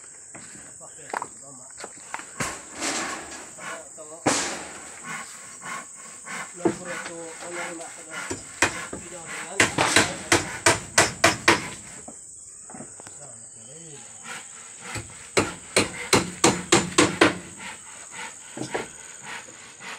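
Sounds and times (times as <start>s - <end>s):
high insect trill: 0.0s - 19.9s
hammer striking wooden plank: 8.2s - 9.0s, 9.6s - 11.8s, 14.9s - 17.5s.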